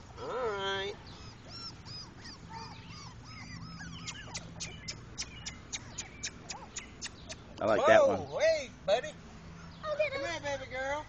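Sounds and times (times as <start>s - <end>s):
puppies whining and squeaking: 0.0s - 7.5s.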